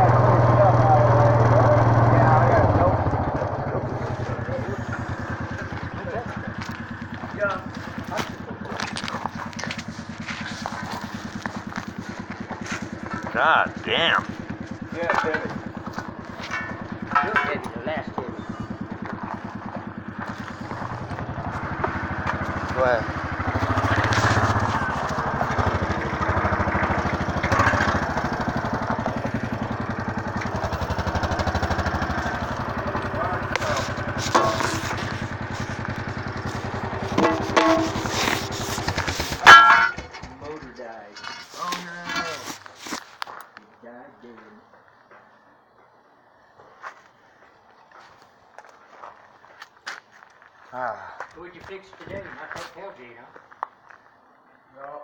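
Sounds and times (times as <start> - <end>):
engine running: 0.0 - 43.1.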